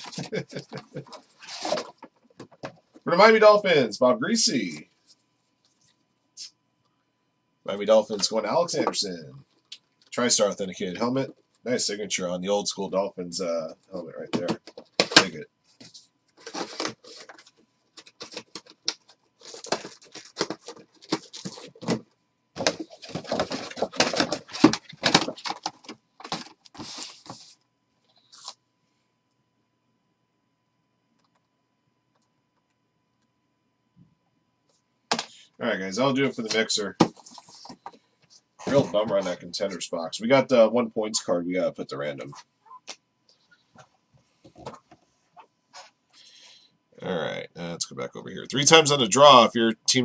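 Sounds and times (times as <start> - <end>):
plastic packaging crinkling: 14.7 - 22.0, 22.6 - 27.5.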